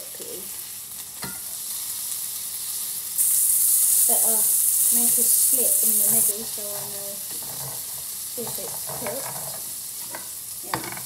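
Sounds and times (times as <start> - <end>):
burger patty sizzling in a pan: 0.0 - 11.0.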